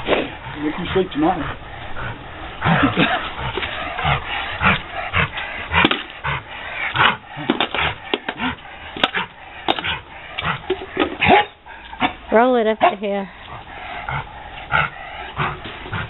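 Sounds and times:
dog barking: 11.2s - 12.2s, 12.8s - 13.0s.

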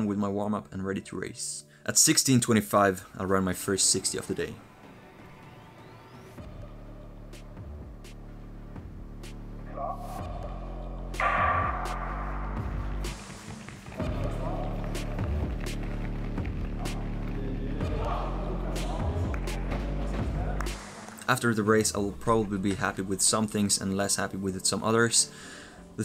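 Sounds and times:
music with steady beat: 6.4s - 9.6s, 10.2s - 21.3s
sudden loud ringing sound: 11.2s - 13.6s.

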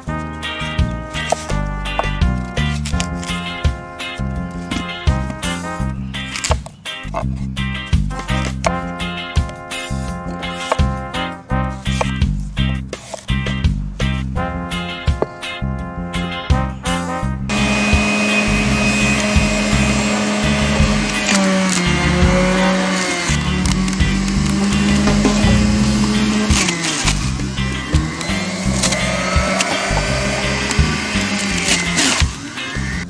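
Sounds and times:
juicer motor whirring: 17.5s - 33.0s.

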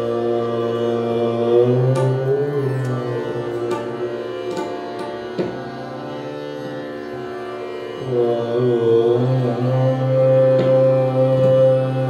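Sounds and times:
harmonium: 0.0s - 12.0s
tanpura drone: 0.0s - 12.0s.

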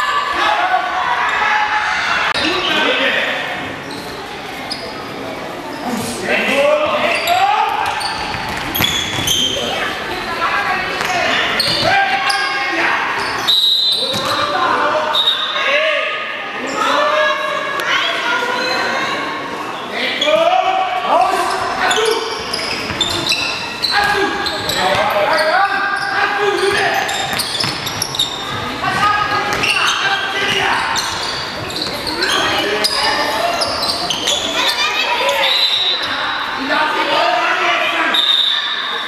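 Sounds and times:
ball bouncing on hall floor: 7.8s - 9.5s, 14.1s - 14.5s, 27.2s - 32.4s.

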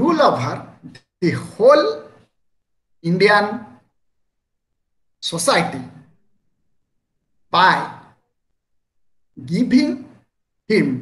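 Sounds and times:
man speaking: 0.0s - 2.3s, 3.0s - 3.9s, 5.2s - 6.2s, 7.5s - 8.2s, 9.3s - 11.0s.

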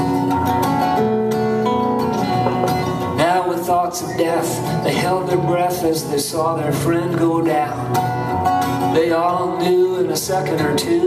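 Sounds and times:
acoustic guitar: 0.0s - 11.0s.

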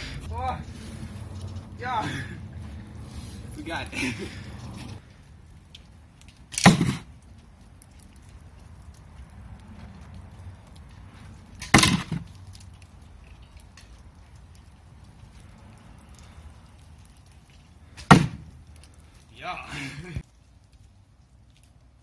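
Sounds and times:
arrow striking target: 6.5s - 7.1s, 18.0s - 18.4s.

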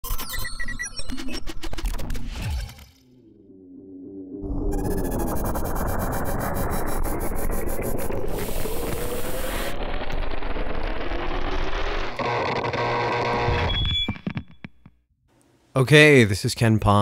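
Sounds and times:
rumbling wash rising in pitch: 3.5s - 12.2s
held tones: 12.2s - 14.9s.

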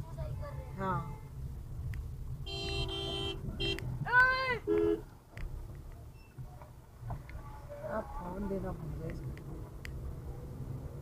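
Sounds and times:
vehicle horn honking: 2.4s - 3.8s, 4.6s - 5.0s.

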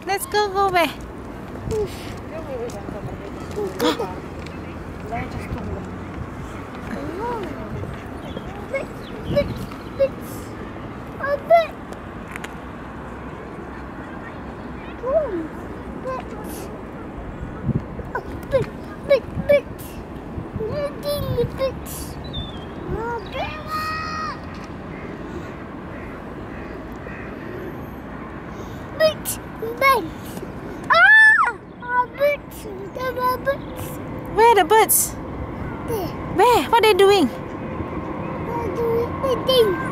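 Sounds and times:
outdoor background noise: 0.0s - 39.9s
toddler exclamations: 23.0s - 24.5s
distant crow calls: 23.7s - 28.8s
toddler squealing: 30.9s - 31.6s.

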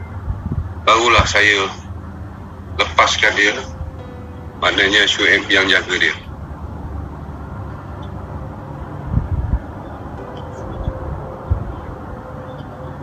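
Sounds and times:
faint steady hum: 0.0s - 13.0s
low background rumble: 0.0s - 13.0s
dull low thumps: 6.3s - 12.1s.

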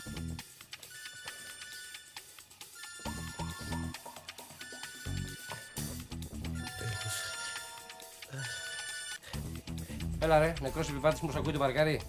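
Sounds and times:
background music: 0.0s - 12.0s
mobile phone ringtone: 0.7s - 9.3s.

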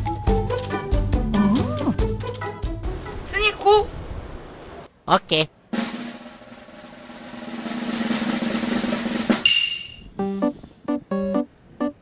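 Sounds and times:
snare drum roll: 5.7s - 10.0s.

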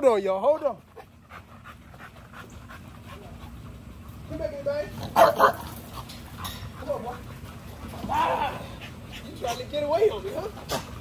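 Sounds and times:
dog panting rapidly: 0.3s - 4.9s, 5.6s - 8.0s, 8.7s - 10.6s.

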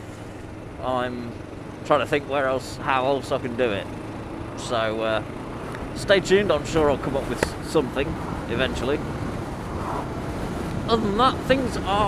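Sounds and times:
motorcycle engine and road noise: 0.0s - 12.0s
wind rush on microphone: 7.0s - 12.0s.

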